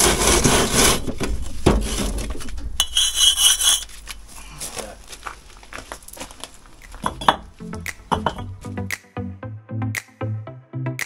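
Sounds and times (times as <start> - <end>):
tool scraping mortar off brick: 0.0 - 1.2, 2.8 - 4.0
electronic music with beat: 7.6 - 11.0.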